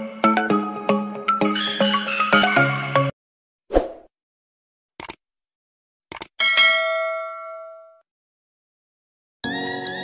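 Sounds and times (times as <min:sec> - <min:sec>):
bright bell ding: 0:06.4 - 0:08.0.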